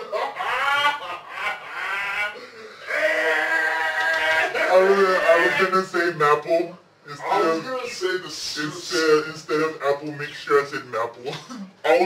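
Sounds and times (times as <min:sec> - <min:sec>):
man laughing heartily: 0:00.0 - 0:02.8.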